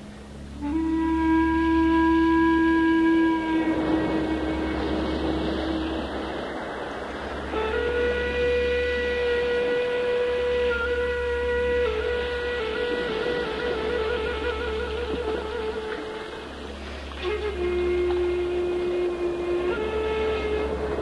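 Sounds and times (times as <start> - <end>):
bamboo flute long notes: 0.0 - 21.0.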